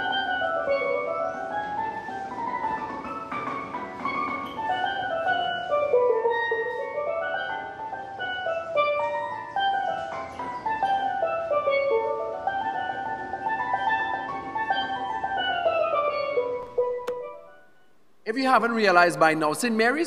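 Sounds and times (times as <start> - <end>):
steelpan melody: 0.0 - 20.0.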